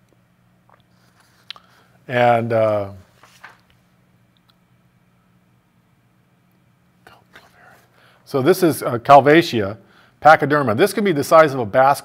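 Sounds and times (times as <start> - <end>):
faint low hum: 0.0 - 12.0
man speaking: 2.1 - 3.1, 8.3 - 12.0
man breathing: 7.4 - 8.3, 9.8 - 10.2.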